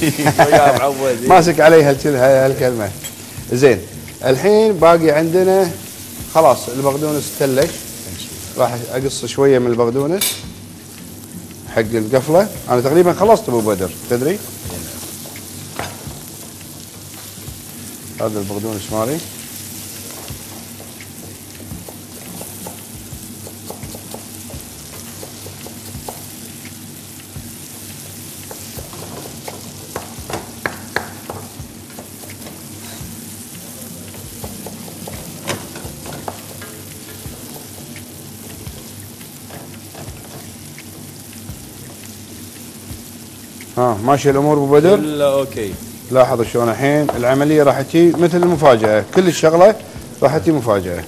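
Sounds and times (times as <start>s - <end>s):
food sizzling in a pan: 0.0s - 51.0s
knife chopping on wooden board: 20.8s - 26.3s.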